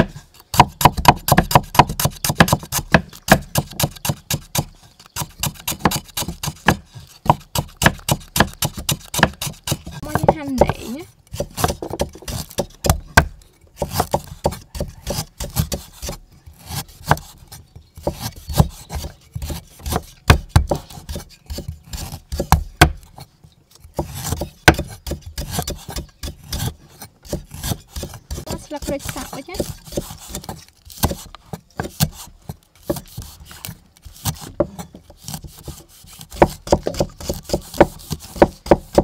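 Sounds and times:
cleaver chopping on wooden board: 0.0s - 23.2s, 23.9s - 39.0s
blade scraping on wood: 1.3s - 39.0s.

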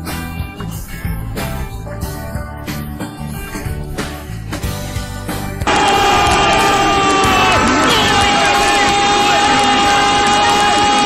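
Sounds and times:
music break: 0.0s - 11.0s
steady high tones: 5.7s - 10.6s
stadium crowd noise on radio: 5.7s - 11.0s.

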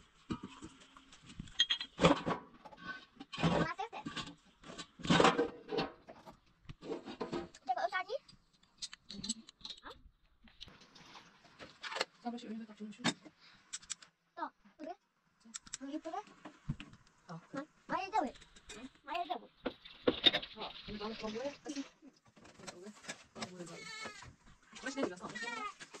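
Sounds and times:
household clatter: 0.2s - 7.6s, 19.6s - 23.8s
people talking: 3.4s - 4.1s, 7.6s - 8.2s, 12.2s - 13.2s, 14.4s - 16.2s, 17.3s - 19.5s, 20.4s - 24.0s, 24.8s - 25.8s.

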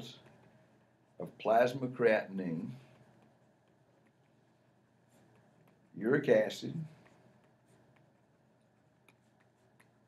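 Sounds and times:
stylus strokes on pen tablet: 0.0s - 10.0s.

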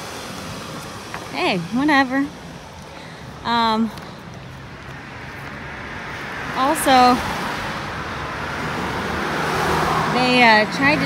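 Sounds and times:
cars driving past: 0.0s - 11.0s.

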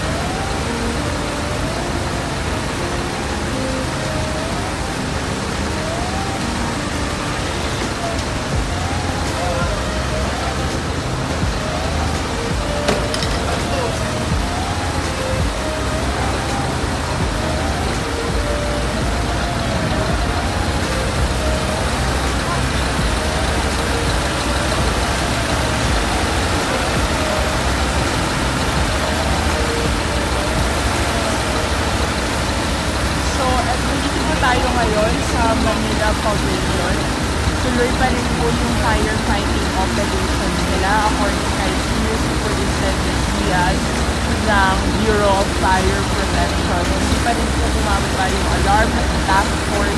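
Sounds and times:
low rumble of engines: 0.0s - 49.9s
siren wailing: 0.0s - 49.9s.

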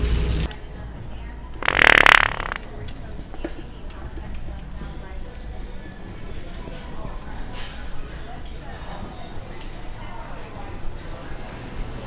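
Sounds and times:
wet fart sound: 1.6s - 2.7s.

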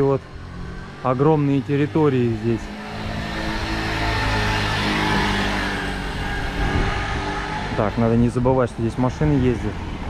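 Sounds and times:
car passing: 0.0s - 10.0s
motor scooter passing: 0.0s - 10.0s.

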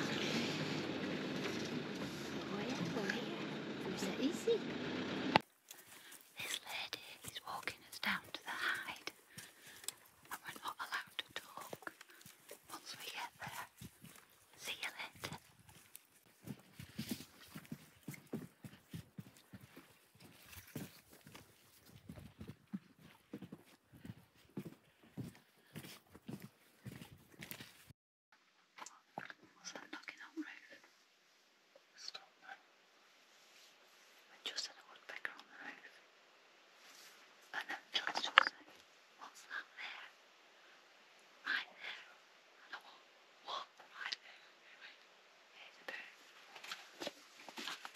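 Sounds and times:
whispering voices: 2.1s - 4.7s, 6.4s - 9.1s, 10.3s - 11.9s, 12.7s - 13.7s, 14.6s - 15.4s, 34.4s - 36.0s.

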